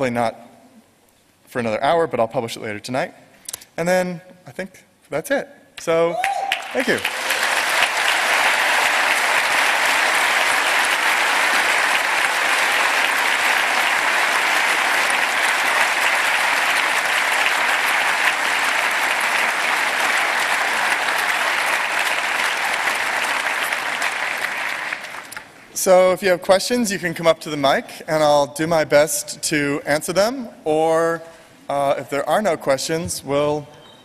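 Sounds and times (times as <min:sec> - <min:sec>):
audience applauding: 0:06.2 - 0:26.0.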